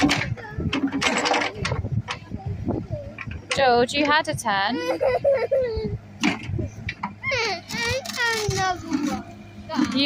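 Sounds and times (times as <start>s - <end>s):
excavator engine running: 0.0s - 10.0s
child talking and calling out: 0.2s - 1.0s, 4.7s - 9.9s.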